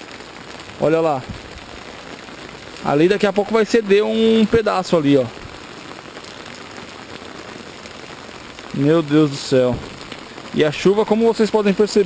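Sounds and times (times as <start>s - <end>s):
heavy rain on an umbrella: 0.0s - 12.0s.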